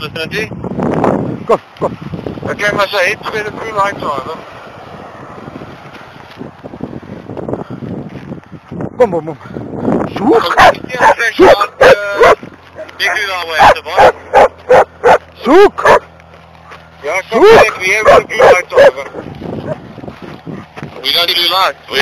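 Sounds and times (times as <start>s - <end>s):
dog barking and yelping: 10.3s - 16.1s, 17.4s - 19.9s.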